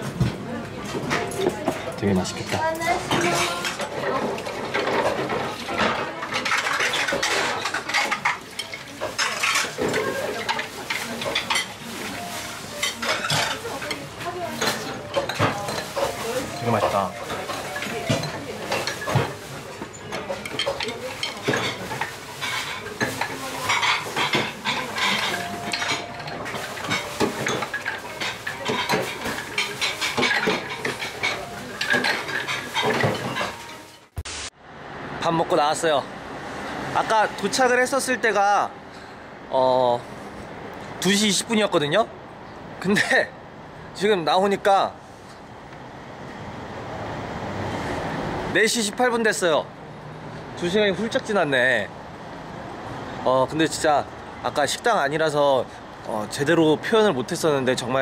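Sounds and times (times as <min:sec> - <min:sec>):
dishes and cutlery clattering: 0:00.0 - 0:34.1.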